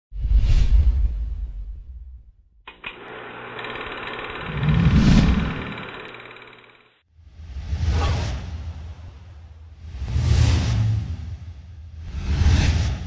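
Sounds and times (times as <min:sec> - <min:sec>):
mechanical buzz: 0:02.7 - 0:07.0.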